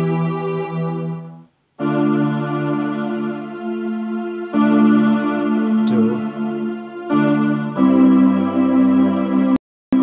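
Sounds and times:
electronic keyboard string chords: 0.0s - 10.0s.

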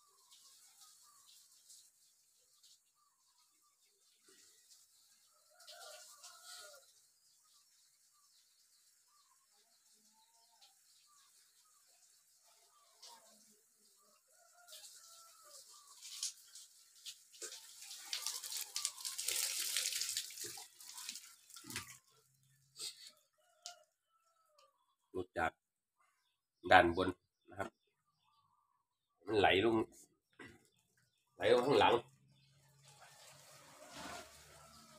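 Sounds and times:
water pouring from watering can: 0.0s - 23.8s, 31.4s - 34.9s
small birds chirping: 0.0s - 33.0s.

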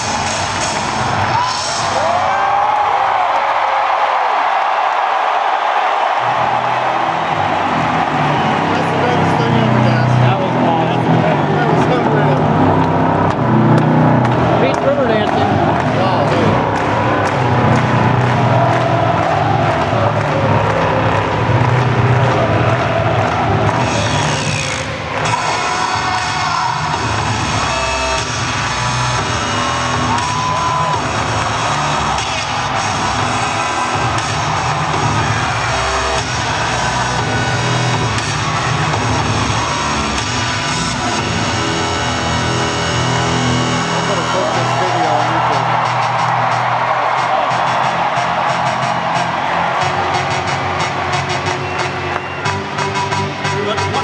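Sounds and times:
music over loudspeakers: 0.0s - 2.2s, 6.1s - 54.0s
crowd noise: 0.0s - 54.0s.

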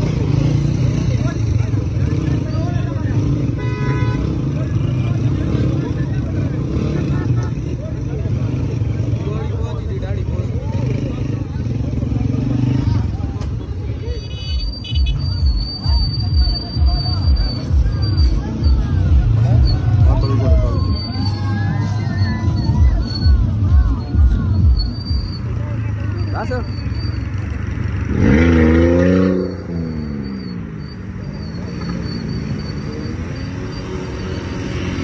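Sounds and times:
men chattering: 0.0s - 35.0s
motorcycle engines running: 0.0s - 35.0s.

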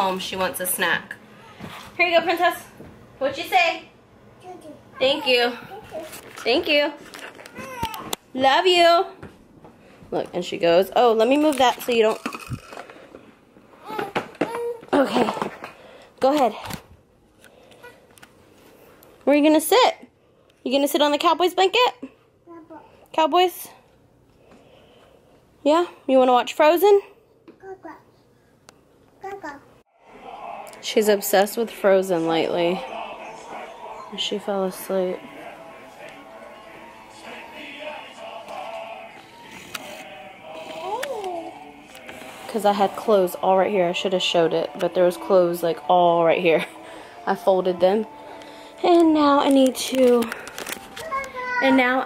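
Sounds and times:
toddler vocal sounds: 7.4s - 8.2s, 13.8s - 15.6s, 22.5s - 23.0s, 40.6s - 41.6s
faint television audio: 29.2s - 52.0s.

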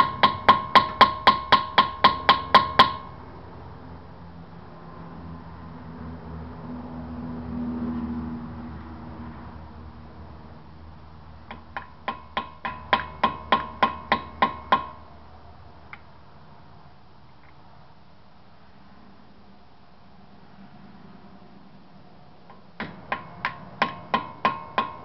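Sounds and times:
hammer tapping on metal: 0.0s - 3.2s, 11.5s - 15.1s, 22.5s - 25.0s.

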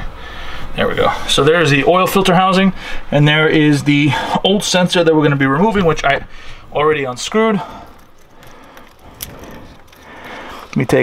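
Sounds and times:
metallic clicks and handling noise: 7.9s - 11.0s.

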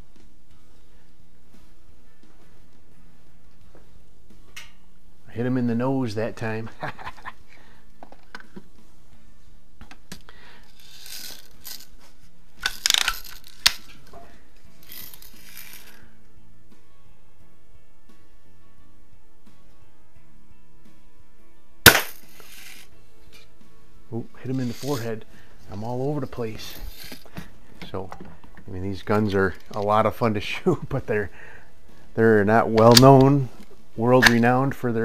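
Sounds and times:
rifle being cocked: 12.6s - 14.0s, 21.9s - 22.9s, 32.8s - 33.3s
sharp gunshot: 21.9s - 22.3s.

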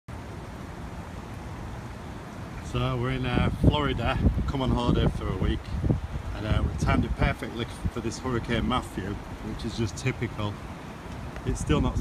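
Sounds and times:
storm wind: 1.5s - 12.0s
wind rumble on microphone: 2.6s - 12.0s.

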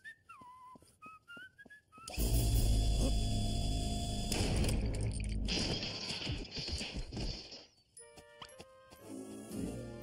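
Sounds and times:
whistled sliding notes: 0.0s - 2.4s.

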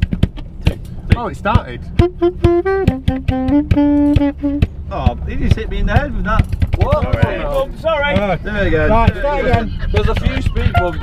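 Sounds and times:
brass band horn notes: 1.9s - 4.7s.

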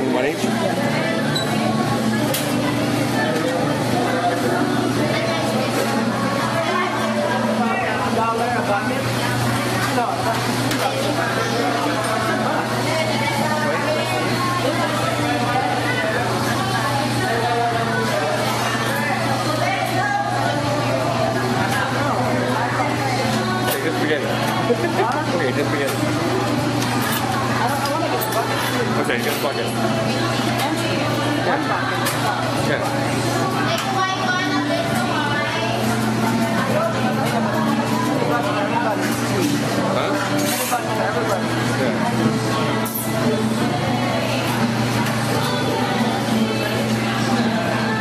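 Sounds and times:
people talking indistinctly: 0.0s - 48.0s.

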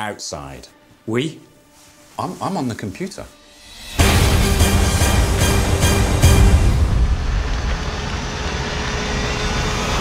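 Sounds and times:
faint rising tone: 3.5s - 10.0s.

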